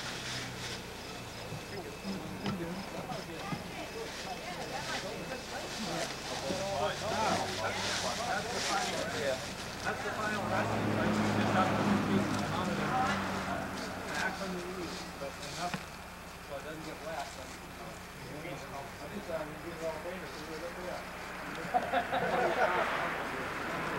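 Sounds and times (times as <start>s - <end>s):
distant people chattering: 0.0s - 23.9s.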